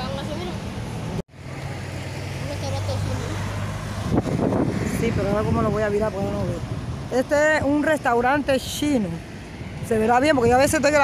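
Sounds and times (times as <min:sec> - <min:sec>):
traffic engine hum: 0:00.0 - 0:11.0
wind on microphone: 0:03.7 - 0:11.0.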